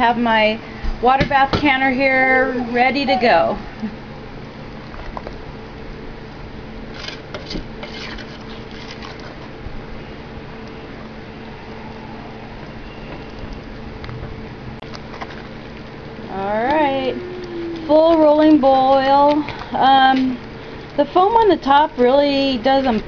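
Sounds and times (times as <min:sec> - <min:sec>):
steady low hum: 0:00.0 - 0:23.0
spoon scraping a metal pot: 0:07.0 - 0:09.4
person speaking: 0:16.3 - 0:20.4.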